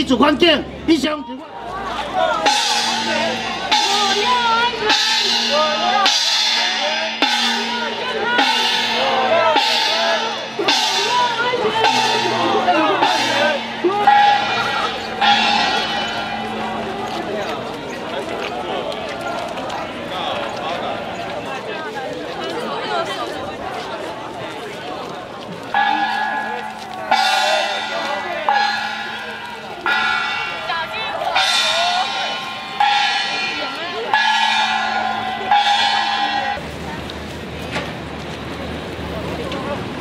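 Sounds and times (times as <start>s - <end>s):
crowd talking: 0.0s - 40.0s
loud held calls: 1.9s - 17.9s
handheld gong ringing: 2.4s - 17.8s, 25.8s - 36.6s.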